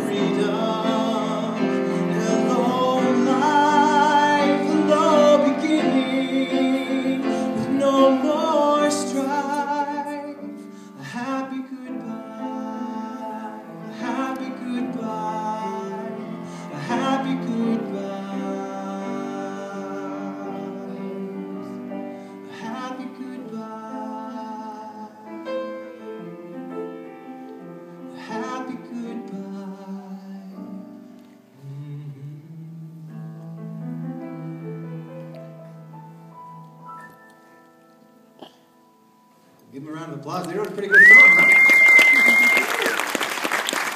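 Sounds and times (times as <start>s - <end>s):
man singing: 0.0s - 25.8s, 28.0s - 36.4s
grand piano: 0.0s - 43.9s.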